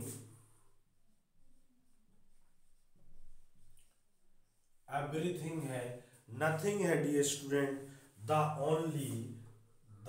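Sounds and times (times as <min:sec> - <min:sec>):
man talking: 0:04.9 - 0:09.5.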